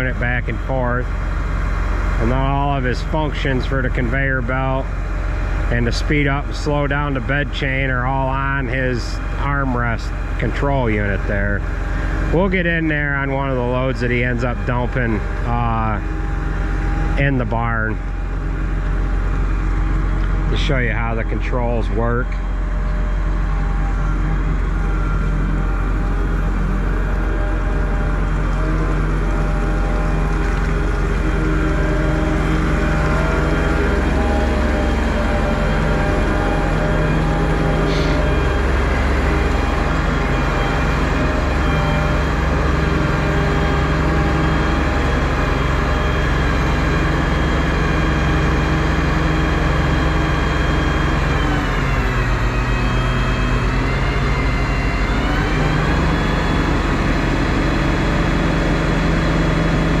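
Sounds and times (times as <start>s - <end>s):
heavy diesel engines running: 0.0s - 60.0s.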